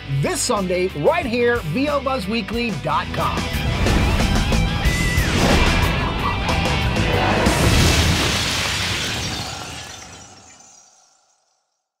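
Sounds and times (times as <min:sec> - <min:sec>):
glass ringing: 0:09.3 - 0:11.9.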